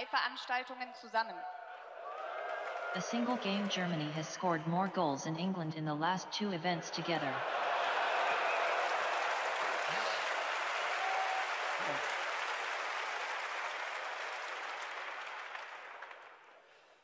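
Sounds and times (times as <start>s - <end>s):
audience applauding: 1.8s - 5.2s, 7.2s - 16.7s.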